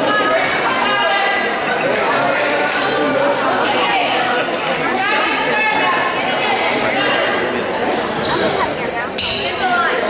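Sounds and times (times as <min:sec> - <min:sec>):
echoing crowd chatter: 0:00.0 - 0:10.0.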